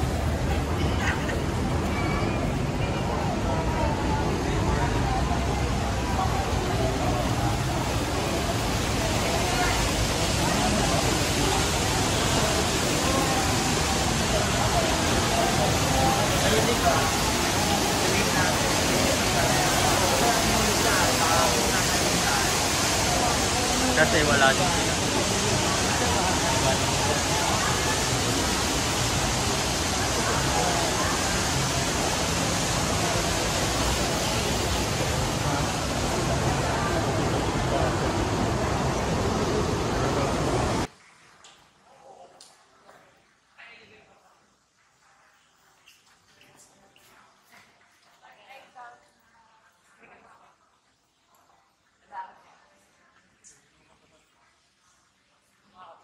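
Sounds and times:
faint crowd voices: 0:00.0 - 0:41.0
fountain water splashing: 0:00.0 - 0:56.0.

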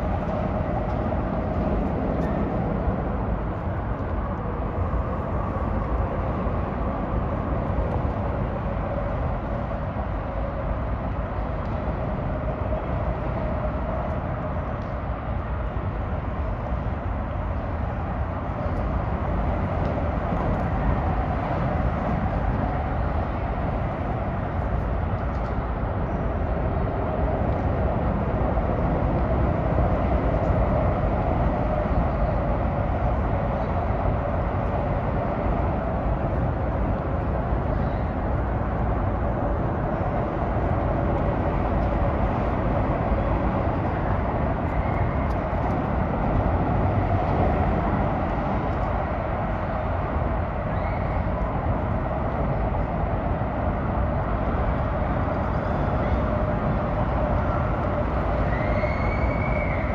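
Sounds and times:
highway traffic roar: 0:00.0 - 0:59.9.

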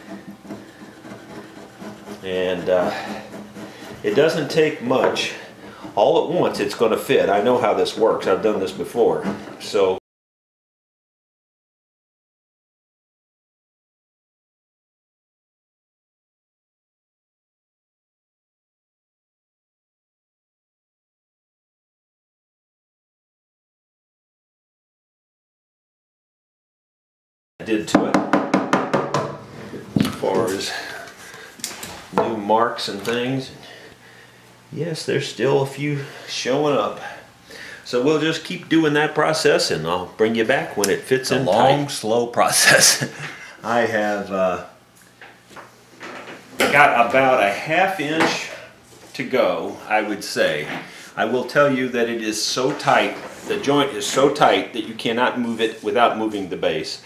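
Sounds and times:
chisel scraping wood: 0:00.0 - 0:09.9
sharp knocks on wood: 0:28.0 - 0:29.4.

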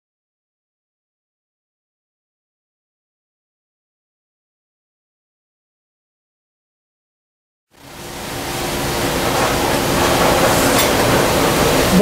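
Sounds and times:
rushing workshop noise: 0:07.8 - 0:12.0.

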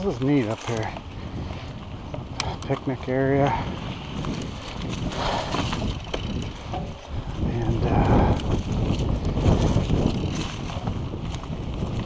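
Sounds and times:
bike ticks and rattles: 0:00.0 - 0:12.0
wind noise on microphone: 0:00.0 - 0:12.0.

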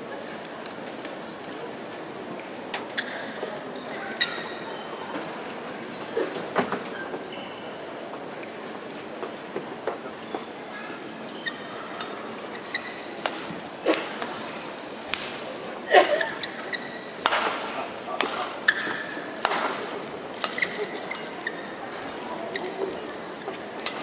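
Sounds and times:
crowd murmur: 0:00.0 - 0:24.0
shoes squeaking on court: 0:02.8 - 0:05.0, 0:06.1 - 0:07.8, 0:11.3 - 0:14.6, 0:16.0 - 0:17.3, 0:18.4 - 0:24.0
rackets hitting shuttlecock: 0:13.2 - 0:14.3, 0:15.1 - 0:15.5, 0:16.3 - 0:21.3.

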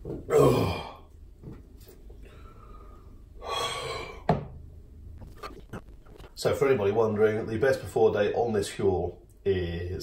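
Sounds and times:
person gasping breath: 0:02.2 - 0:04.3.

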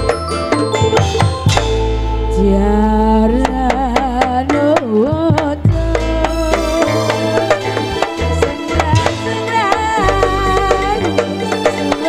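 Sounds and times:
steady low bass: 0:00.0 - 0:11.4
hand-drum strokes: 0:00.0 - 0:12.0
woman singing into microphone: 0:02.3 - 0:12.0.

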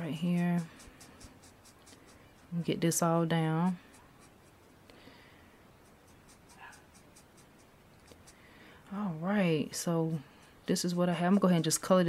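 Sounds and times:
marker scratching on cardstock: 0:00.0 - 0:04.8, 0:05.7 - 0:08.5, 0:09.5 - 0:12.0.

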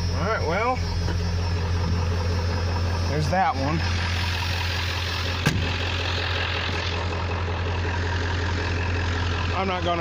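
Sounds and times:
diesel engine idling: 0:00.0 - 0:10.0
sharp knock: 0:05.4 - 0:05.8.

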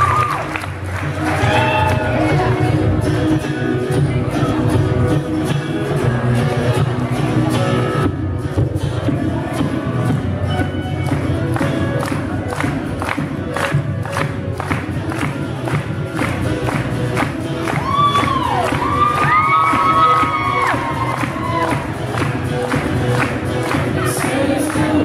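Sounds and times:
audience cheering: 0:00.0 - 0:02.3, 0:17.7 - 0:22.4
acoustic guitar strumming: 0:00.7 - 0:25.0
high-pitched screams: 0:17.8 - 0:21.8.

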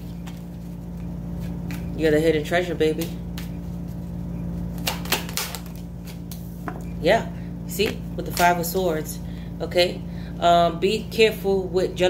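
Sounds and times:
steady low hum: 0:00.0 - 0:12.0
cards clicking and snapping: 0:04.8 - 0:06.4.

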